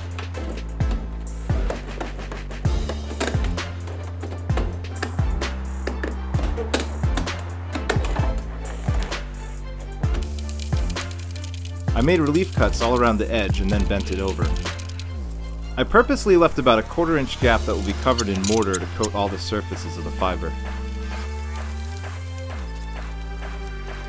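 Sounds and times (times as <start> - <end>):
background music with bass and beat: 0.0 - 24.0.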